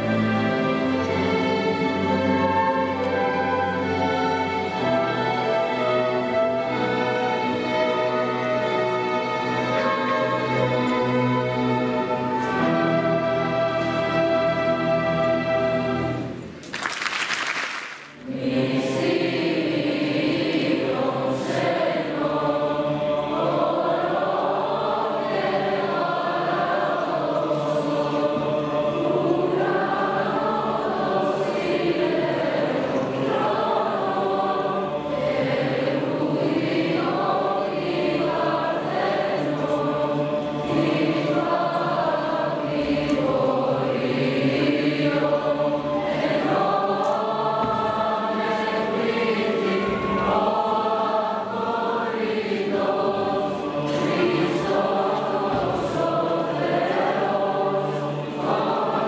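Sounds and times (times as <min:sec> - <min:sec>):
mixed choir singing: 0:00.0 - 0:16.4, 0:18.1 - 0:59.0.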